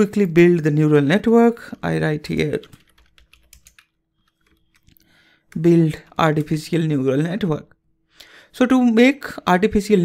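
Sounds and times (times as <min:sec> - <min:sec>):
faint keyboard typing: 0:01.3 - 0:06.9.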